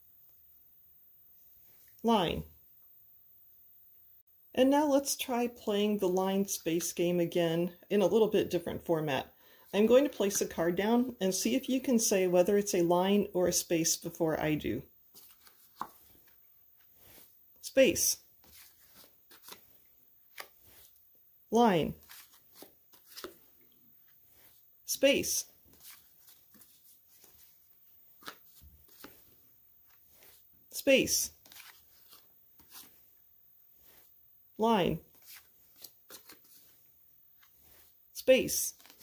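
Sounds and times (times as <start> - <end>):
paper card rustling on carpet: 15.1 - 17.4, 18.4 - 21.0, 22.0 - 24.7, 25.5 - 30.5, 31.3 - 33.2, 35.0 - 38.0, 38.7 - 39.0
card rustling and tapping on carpet: 22.1 - 23.4.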